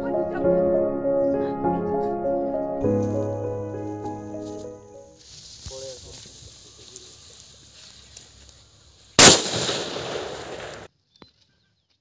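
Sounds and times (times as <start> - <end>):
explosion blast: 9.2 - 10.9.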